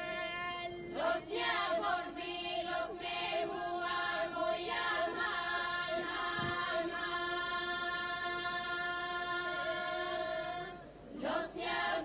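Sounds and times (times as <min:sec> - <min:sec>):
women singing in parts: 0:00.0 - 0:12.0.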